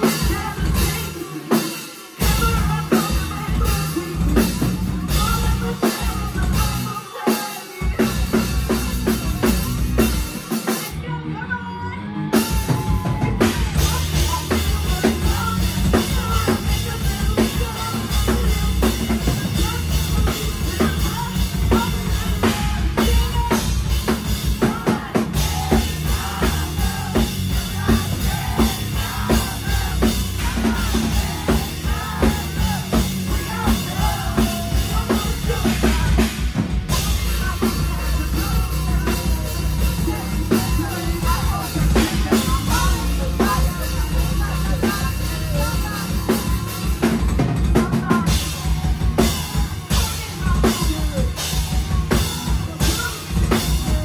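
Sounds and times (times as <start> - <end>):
pounding drum kit: 0.0 - 11.2, 12.2 - 54.0
live rock band playing: 0.0 - 54.0
woman singing lead vocal: 0.0 - 54.0.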